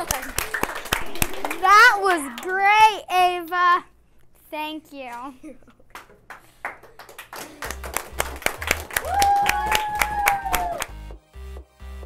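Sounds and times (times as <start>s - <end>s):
hand clapping: 0.0s - 2.9s, 5.8s - 11.0s.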